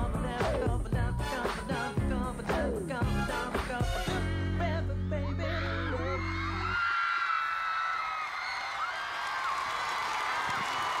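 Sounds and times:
pop song chord with heavy bass: 0.0s - 6.8s
crowd cheering: 5.5s - 11.0s
high screams: 5.5s - 11.0s.

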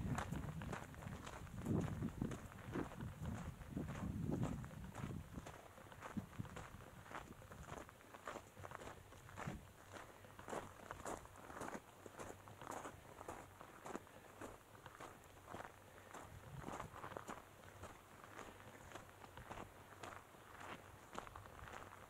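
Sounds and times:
footsteps on gravel trail: 0.0s - 22.0s.

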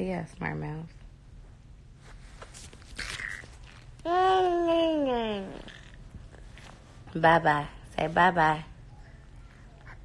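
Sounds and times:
toddler humming: 4.0s - 6.0s.

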